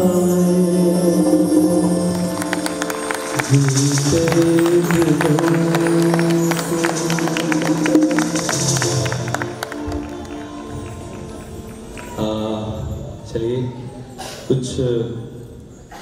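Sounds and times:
live band playing: 0:00.0 - 0:12.2.

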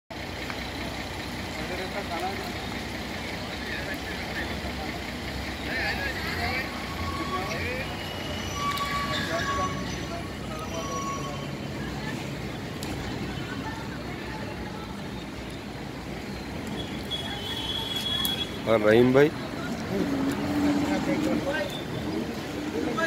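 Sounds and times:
road traffic din: 0:00.1 - 0:23.0
indistinct voices: 0:00.8 - 0:23.0.

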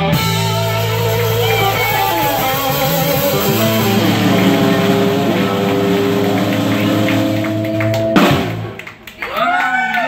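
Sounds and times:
blues band holding a chord: 0:00.0 - 0:09.1
drum and cymbal hit: 0:00.2 - 0:08.8.

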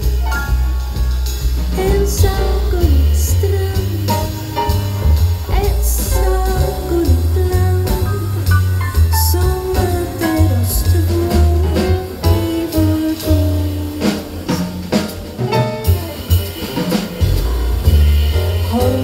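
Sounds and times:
drum kit with cymbals: 0:00.0 - 0:19.0
grand piano: 0:00.0 - 0:19.0
walking double bass: 0:00.0 - 0:19.0
woman singing: 0:01.7 - 0:04.8, 0:05.5 - 0:14.6, 0:18.6 - 0:19.0.

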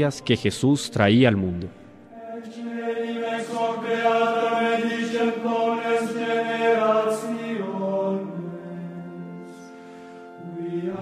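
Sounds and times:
voices chanting long notes: 0:00.0 - 0:11.0.

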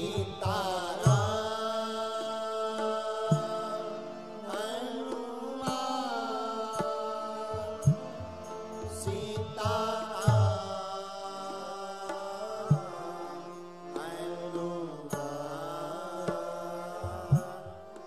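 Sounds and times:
instrumental drone: 0:00.0 - 0:18.0
man singing devotional song: 0:00.0 - 0:18.0.

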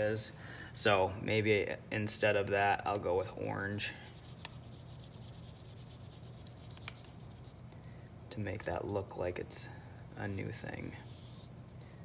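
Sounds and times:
pastel scratching on paper: 0:03.4 - 0:07.6.

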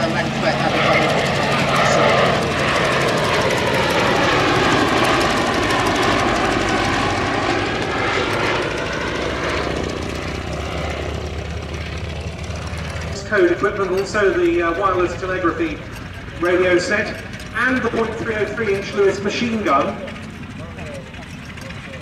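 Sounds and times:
propeller aircraft engine droning: 0:00.0 - 0:22.0.

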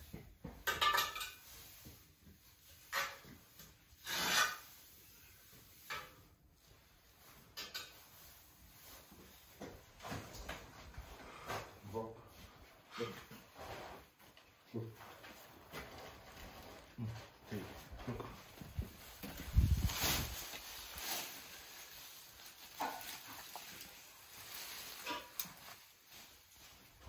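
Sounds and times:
rake scraping hay on floor: 0:01.3 - 0:06.2, 0:18.8 - 0:26.8.

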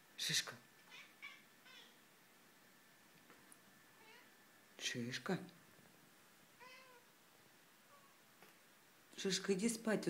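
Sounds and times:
cat chirping: 0:00.8 - 0:02.0, 0:04.0 - 0:04.3, 0:06.6 - 0:07.1.

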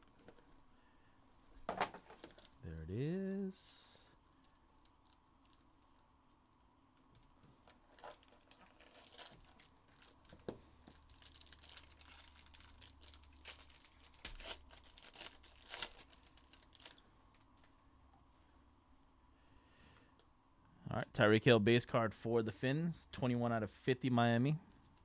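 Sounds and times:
foil wrapper crinkling and tearing: 0:07.7 - 0:17.5.

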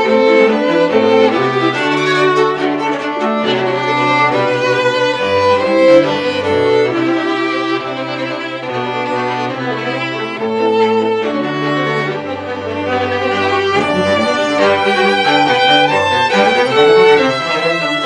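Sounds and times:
string quartet playing: 0:00.0 - 0:18.0.

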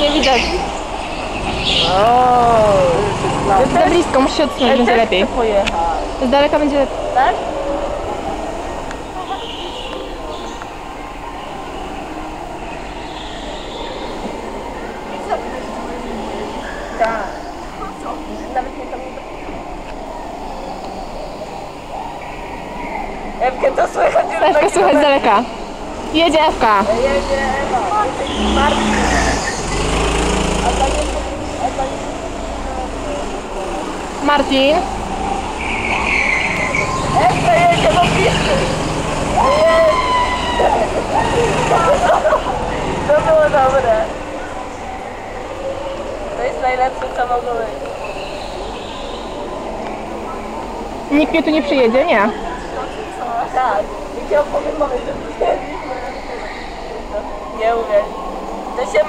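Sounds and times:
distant go-kart engines droning: 0:00.0 - 0:59.0
faint voices: 0:00.0 - 0:59.0.

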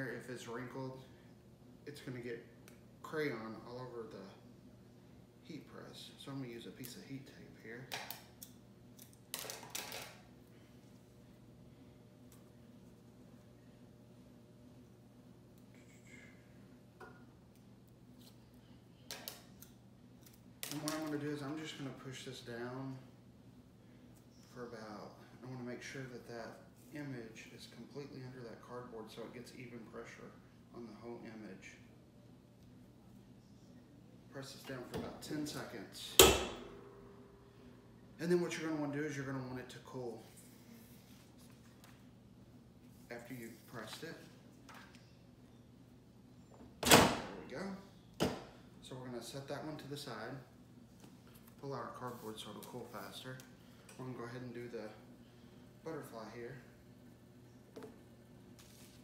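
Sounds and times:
low hum: 0:36.2 - 0:38.2.

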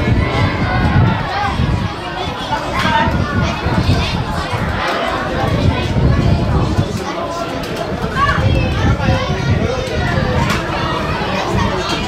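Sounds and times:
children and spectators shouting: 0:00.0 - 0:12.0.

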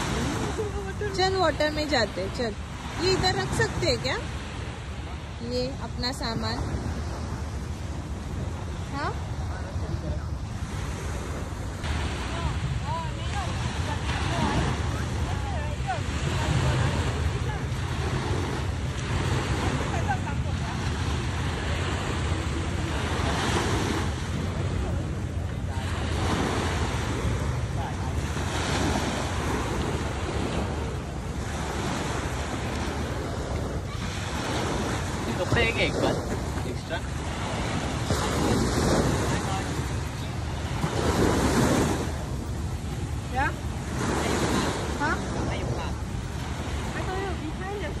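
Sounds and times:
small waves washing on shore: 0:00.0 - 0:48.0.

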